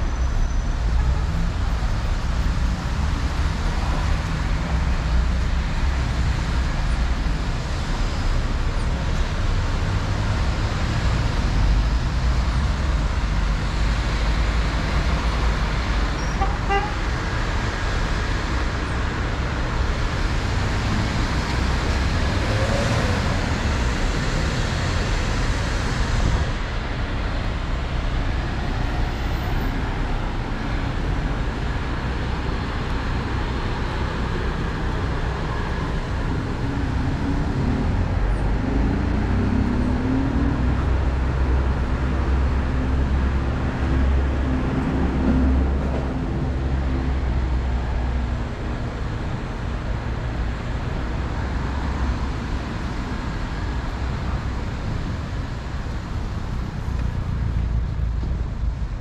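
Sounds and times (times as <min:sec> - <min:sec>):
cars passing: 0:00.0 - 0:59.0.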